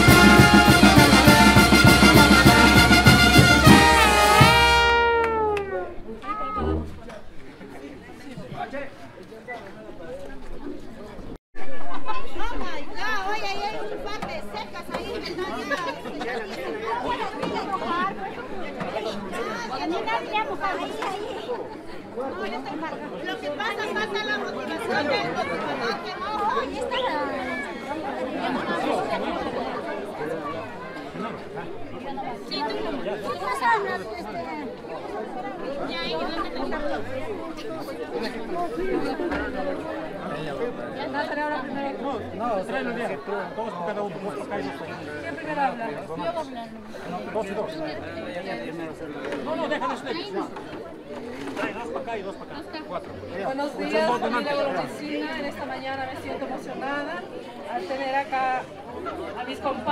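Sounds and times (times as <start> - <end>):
overlapping conversation: 0.0 - 10.0, 12.3 - 59.9.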